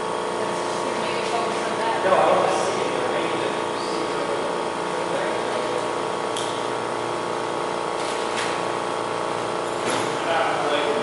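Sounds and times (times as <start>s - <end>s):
steady mechanical hum: 0.0s - 11.0s.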